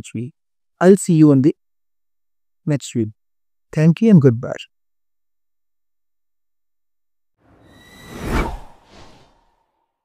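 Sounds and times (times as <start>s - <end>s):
whoosh sound effect: 7.5s - 9.8s.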